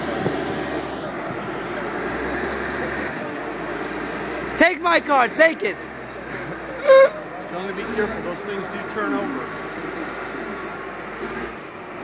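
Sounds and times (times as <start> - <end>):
diesel engine under load: 0.0 - 12.0.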